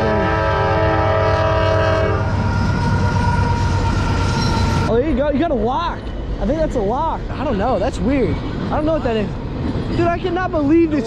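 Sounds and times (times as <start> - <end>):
locomotive horn long chord: 0.0 - 2.6
freight train rumbling past: 0.0 - 11.0.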